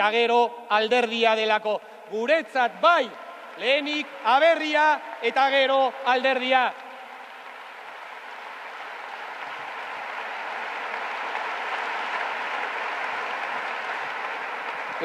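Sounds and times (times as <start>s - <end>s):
audience applause: 3.0s - 15.0s.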